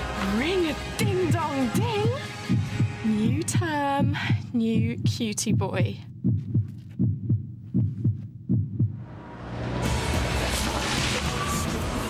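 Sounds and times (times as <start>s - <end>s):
heartbeat double thump: 1.0s - 9.0s.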